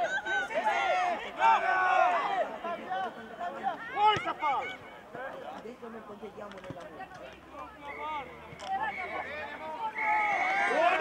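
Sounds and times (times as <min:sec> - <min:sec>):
people shouting: 0:00.0 - 0:02.6, 0:08.8 - 0:11.0.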